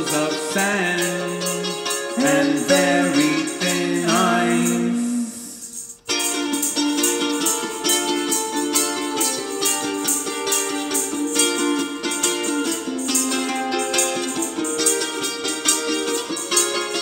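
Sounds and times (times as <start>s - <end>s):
hand percussion shaking: 0.0s - 17.0s
ukulele strumming: 0.0s - 17.0s.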